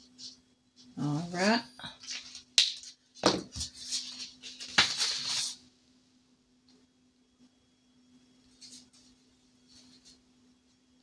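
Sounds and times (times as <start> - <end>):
paper money rustling: 2.0 - 5.6.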